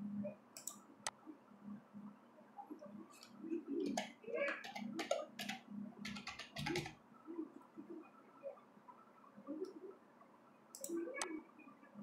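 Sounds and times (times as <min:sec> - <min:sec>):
computer keyboard typing: 0:03.8 - 0:07.0.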